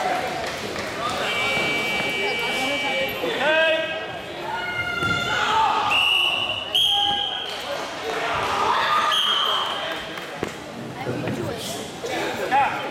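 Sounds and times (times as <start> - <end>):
voices in sports hall: 0.0 - 12.9
high whistle blasts: 5.8 - 7.5, 9.0 - 9.6.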